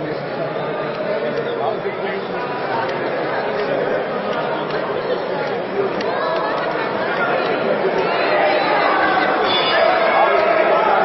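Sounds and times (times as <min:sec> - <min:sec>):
crowd of overlapping voices: 0:00.0 - 0:11.0.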